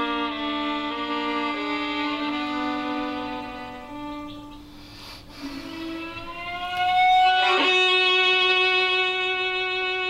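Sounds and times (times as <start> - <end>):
solo violin bowed notes: 0.0 - 10.0.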